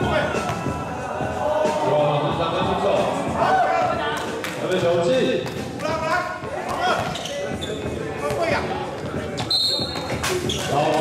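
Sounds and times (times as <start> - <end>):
voices calling out in echoing hall: 0.0 - 11.0.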